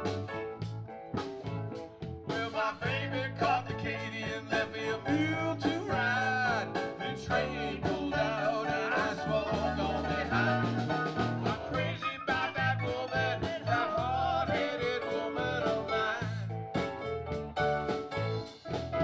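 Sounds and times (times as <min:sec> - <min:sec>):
bending lead guitar line: 0:00.0 - 0:19.0
live blues band playing: 0:00.0 - 0:19.0.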